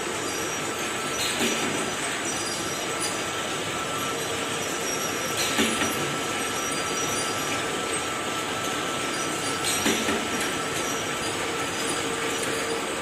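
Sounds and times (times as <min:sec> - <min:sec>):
machinery drone with thin whine: 0:00.0 - 0:13.0.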